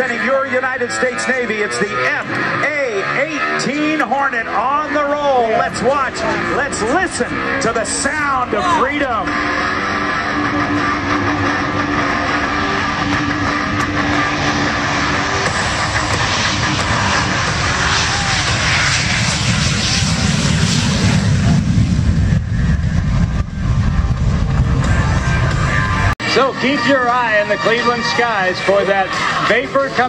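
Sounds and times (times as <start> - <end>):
jet engines roaring: 0.0 - 30.0.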